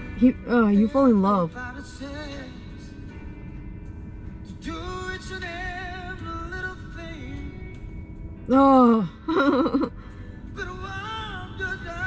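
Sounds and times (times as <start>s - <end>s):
soft instrumental backing: 0.0s - 12.0s
man singing with raspy voice: 1.4s - 3.0s, 4.6s - 7.6s, 10.6s - 12.0s.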